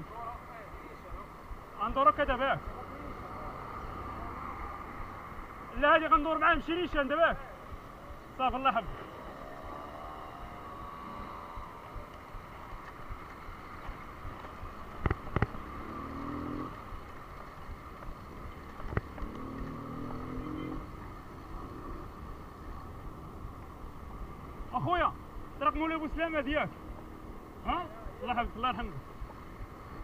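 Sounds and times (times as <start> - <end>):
road noise from bicycle: 0.0 - 30.0.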